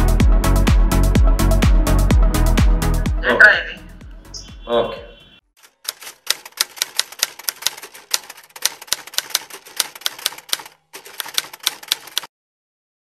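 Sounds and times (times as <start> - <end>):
typewriter key clicks: 5.6 - 12.3.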